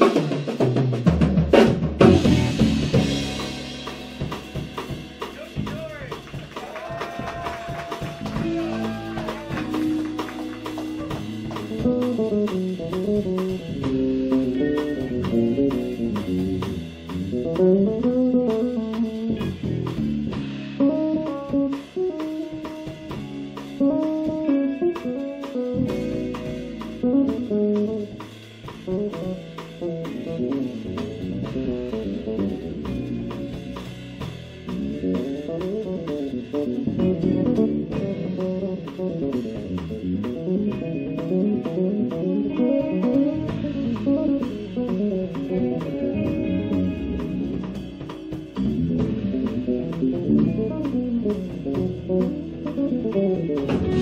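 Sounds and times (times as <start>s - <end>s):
electric basses: 0.0s - 54.0s
electric guitar: 0.0s - 54.0s
steady drumming: 0.0s - 54.0s.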